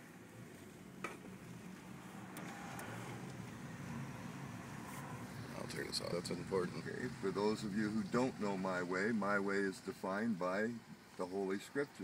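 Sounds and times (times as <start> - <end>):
car engine and road hum: 0.0 - 11.7.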